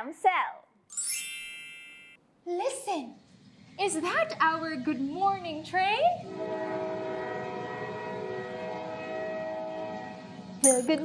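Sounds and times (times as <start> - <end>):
train horn blast: 6.2 - 10.6.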